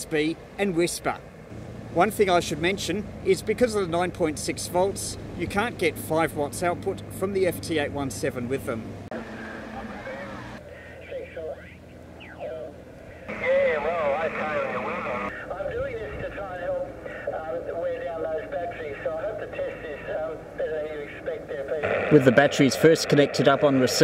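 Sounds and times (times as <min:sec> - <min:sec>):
radio voices: 0:09.1 - 0:24.0
radio band noise hiss: 0:09.2 - 0:24.0.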